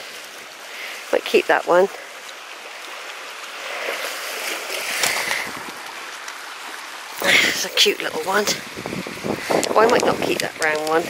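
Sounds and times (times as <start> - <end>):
sea washing on pebble shore: 0.0 - 11.0.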